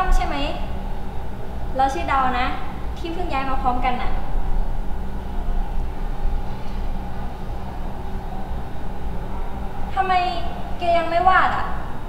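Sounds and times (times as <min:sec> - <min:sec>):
low rumble: 0:01.6 - 0:10.7.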